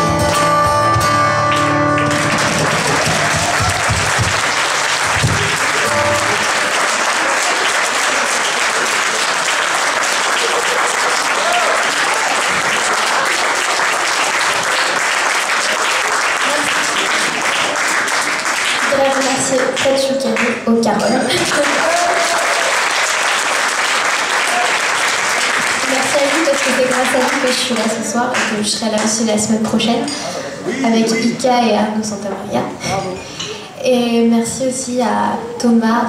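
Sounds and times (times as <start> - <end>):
audience applauding: 1.3 - 29.2
acoustic guitar chord ringing: 5.7 - 6.7.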